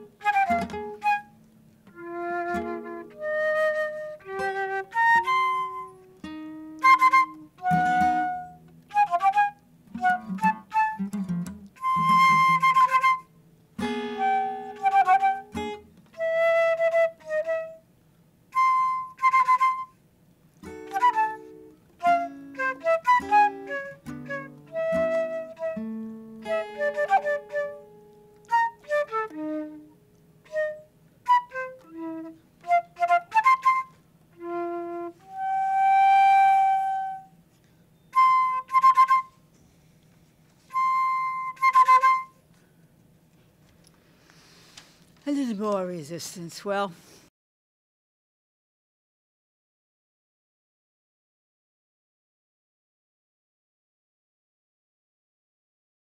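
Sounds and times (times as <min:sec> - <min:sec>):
acoustic guitar notes: 0:00.0 - 0:03.4, 0:04.0 - 0:17.8, 0:20.5 - 0:32.8
flute playing short phrases: 0:00.0 - 0:06.0, 0:06.7 - 0:11.1, 0:11.8 - 0:15.6, 0:20.6 - 0:25.8, 0:26.4 - 0:37.4, 0:38.1 - 0:39.4, 0:40.7 - 0:42.4.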